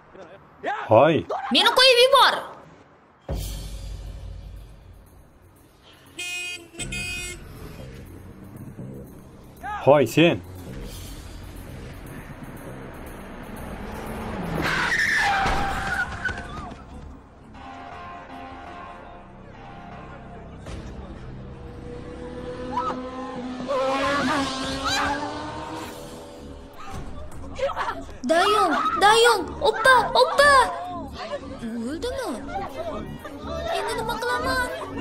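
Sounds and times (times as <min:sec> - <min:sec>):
car horn honking: 0:05.9 - 0:08.2
motor scooter passing: 0:10.4 - 0:15.0, 0:21.6 - 0:26.6.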